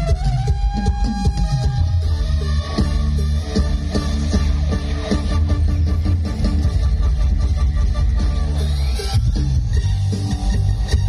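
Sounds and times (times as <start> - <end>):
heavy bass line: 0.0 - 11.0
live band music through pa: 0.0 - 11.0.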